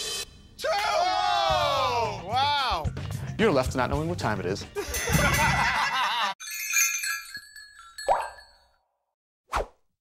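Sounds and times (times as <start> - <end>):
music: 0.0 - 6.3
laughter: 4.8 - 6.4
tinkling chime tones: 6.4 - 8.9.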